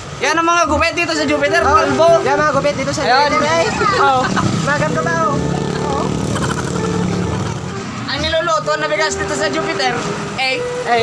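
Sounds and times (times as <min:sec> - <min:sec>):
faint voices: 0:00.2 - 0:06.8
motor engine humming: 0:00.7 - 0:10.9.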